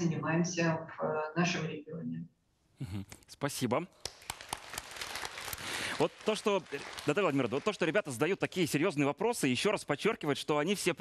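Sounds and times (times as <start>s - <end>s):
children applauding: 4.1s - 7.9s.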